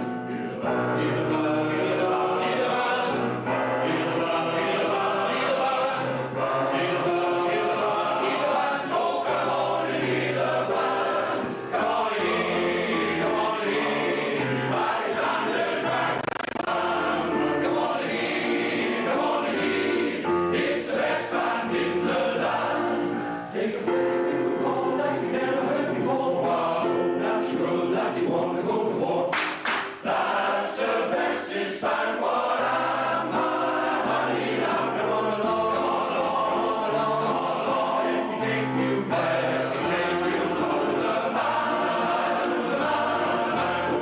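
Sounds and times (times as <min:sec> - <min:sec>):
male voice choir singing: 0:00.3 - 0:29.4, 0:30.0 - 0:44.0.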